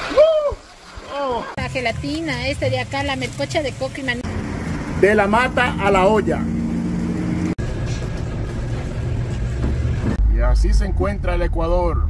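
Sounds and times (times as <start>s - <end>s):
low motor hum: 1.8s - 12.0s.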